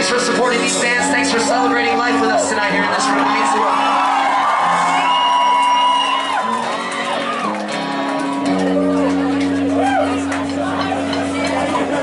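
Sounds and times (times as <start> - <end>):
live rock band playing: 0.0 - 12.0
crowd whooping and cheering: 0.6 - 12.0.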